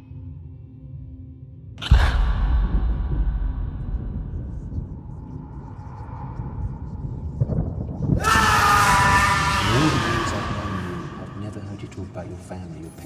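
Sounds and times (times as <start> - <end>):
low rumble: 0.2 - 8.3
harsh scream: 8.2 - 11.7.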